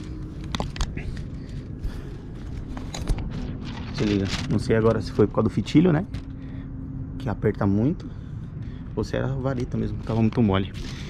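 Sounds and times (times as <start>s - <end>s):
kite clicks and rustles: 0.0s - 5.4s.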